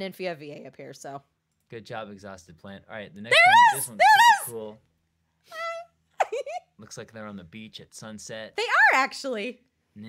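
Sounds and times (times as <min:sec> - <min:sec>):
person's high held vocal sound: 0:03.3 - 0:04.6
person speaking: 0:03.3 - 0:04.7.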